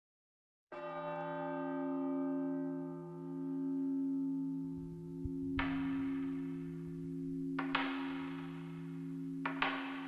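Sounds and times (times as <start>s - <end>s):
bell-like ringing tone: 3.5s - 10.0s.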